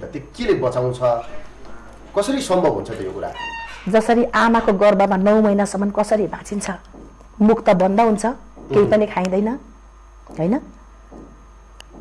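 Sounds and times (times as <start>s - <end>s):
woman speaking: 3.7s - 9.7s, 10.3s - 10.8s.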